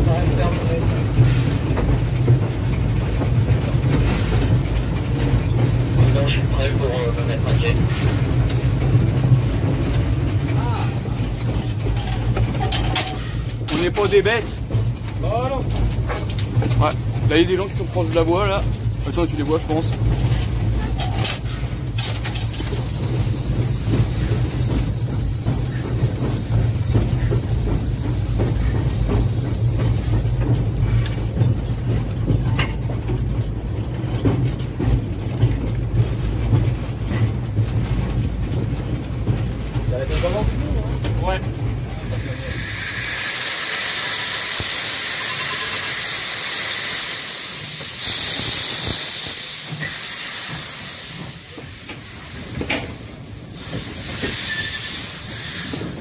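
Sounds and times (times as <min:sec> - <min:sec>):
steam hissing: 0:00.0 - 0:02.9, 0:03.8 - 0:31.4, 0:36.0 - 0:56.0
steam locomotive rumbling: 0:00.0 - 0:56.0.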